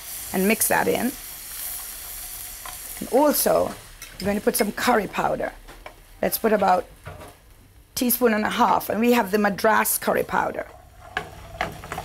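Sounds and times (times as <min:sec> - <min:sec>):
food sizzling in a pan: 0:00.0 - 0:07.2, 0:08.1 - 0:12.0
spoon stirring in a pan: 0:10.0 - 0:12.0.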